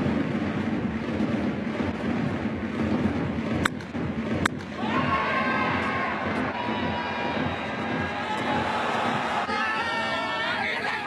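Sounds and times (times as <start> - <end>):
bat striking ball: 3.5 - 5.0
stadium crowd noise: 4.5 - 11.0
crowd cheering: 4.6 - 11.0.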